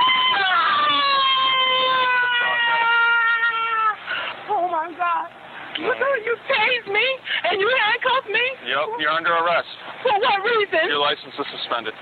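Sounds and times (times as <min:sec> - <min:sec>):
woman wailing in pain: 0:00.0 - 0:04.0.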